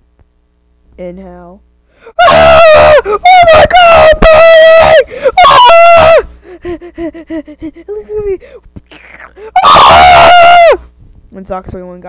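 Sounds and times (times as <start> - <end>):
person screaming: 2.2 - 8.4, 9.4 - 10.8.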